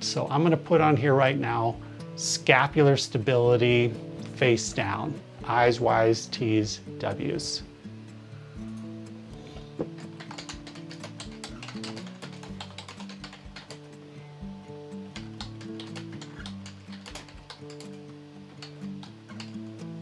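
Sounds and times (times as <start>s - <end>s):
quiet background music: 0.0s - 20.0s
computer keyboard typing: 9.9s - 13.9s, 15.2s - 18.0s, 18.6s - 19.6s.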